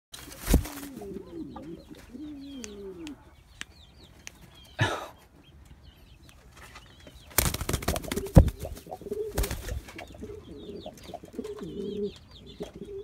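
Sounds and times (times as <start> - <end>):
wings flapping: 0.2 - 1.2, 7.3 - 10.1
pigeon cooing: 0.6 - 3.4, 8.0 - 13.0.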